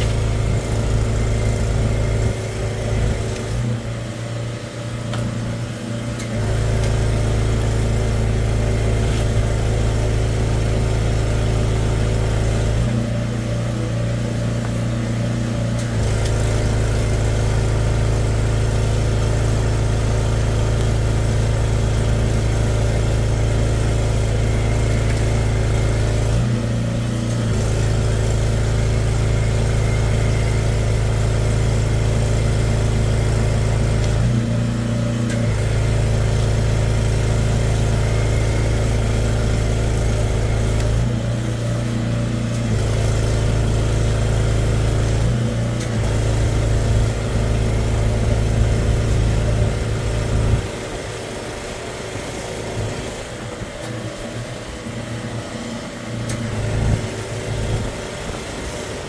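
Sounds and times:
engine running under load: 0.0 - 59.0.

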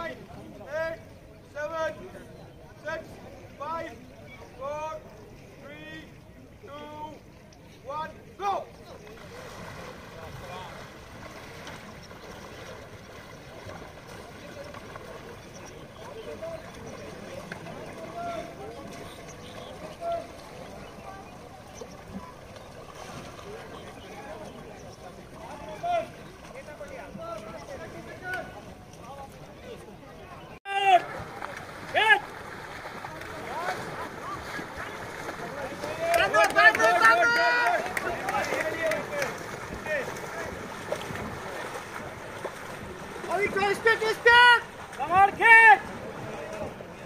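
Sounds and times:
paddles splashing in water: 0.0 - 47.0
wind: 0.0 - 47.0
distant voices calling: 1.0 - 47.0
people shouting: 30.7 - 31.1, 31.9 - 32.3, 35.6 - 39.2, 43.4 - 45.9.

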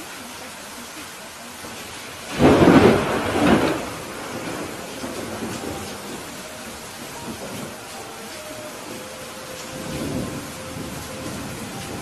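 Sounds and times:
steady rain: 0.0 - 12.0
thunder clap rumbling: 1.6 - 12.0.

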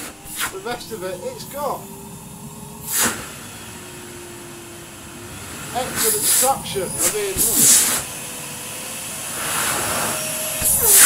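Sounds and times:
loud rush of air: 0.0 - 11.0
vacuum cleaner running: 0.0 - 11.0.

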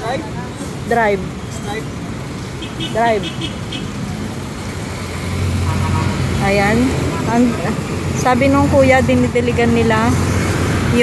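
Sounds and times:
road traffic passing: 0.0 - 11.0.

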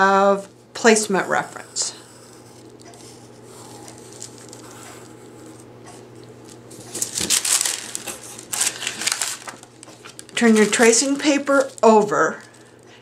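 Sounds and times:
tracing paper rustling: 1.3 - 13.0.

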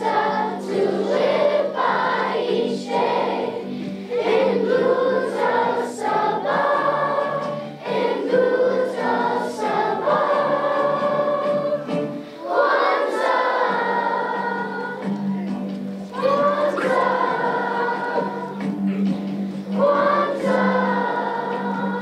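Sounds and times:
children's choir singing: 0.0 - 22.0.

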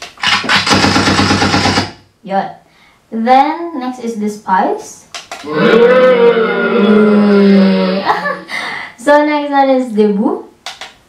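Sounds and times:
automatic gunfire: 0.2 - 2.0.

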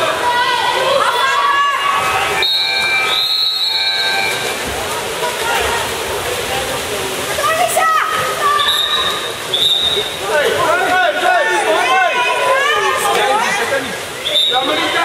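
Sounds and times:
water splashing in a pool: 0.0 - 15.0
whistle blasts: 2.4 - 4.5, 8.6 - 10.2, 14.2 - 15.0.

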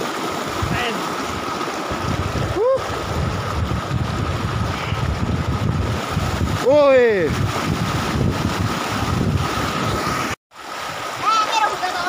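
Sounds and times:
stream rushing over rocks: 0.0 - 12.0
wind buffeting microphone: 0.5 - 11.1.

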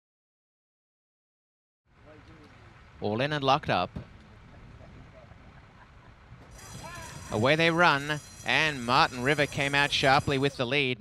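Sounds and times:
outdoor racetrack background: 1.9 - 11.0
high ringing bell: 6.5 - 10.6.

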